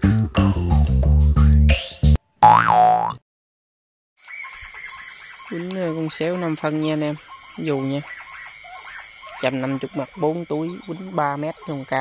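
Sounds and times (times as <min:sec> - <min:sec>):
plucked guitar and bass jingle: 0:00.0 - 0:03.2
cartoon boing sound effect: 0:02.4 - 0:03.2.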